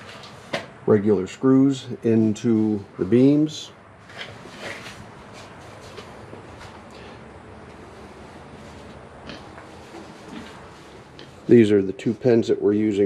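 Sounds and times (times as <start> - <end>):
soft footsteps: 4.0 - 7.0, 7.6 - 11.5.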